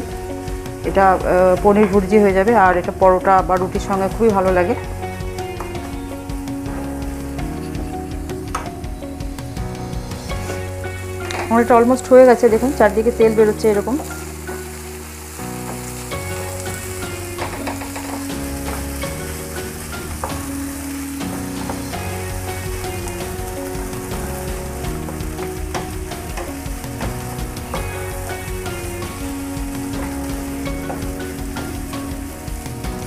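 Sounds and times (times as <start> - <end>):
food sizzling in oil: 0.0 - 33.0
soft background music: 0.0 - 33.0.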